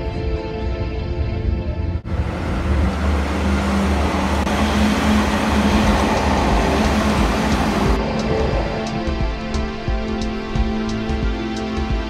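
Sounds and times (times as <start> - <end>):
low engine rumble: 1.2 - 12.0
road noise: 1.9 - 12.0.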